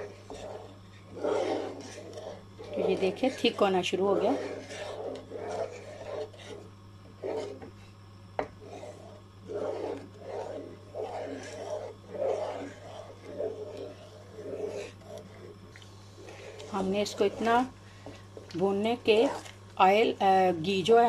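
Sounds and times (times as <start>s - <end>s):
wooden spoon stirring thick paste: 0.0s - 21.0s.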